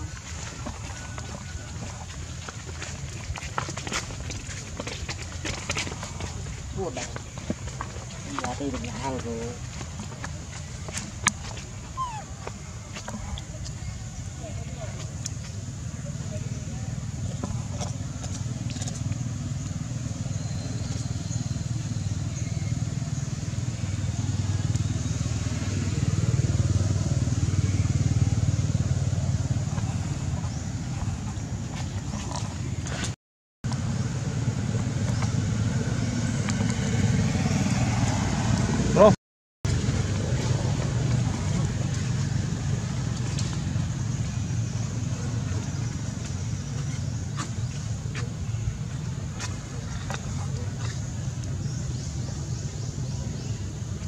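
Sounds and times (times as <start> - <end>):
distant traffic rumble: 0.0 - 54.0.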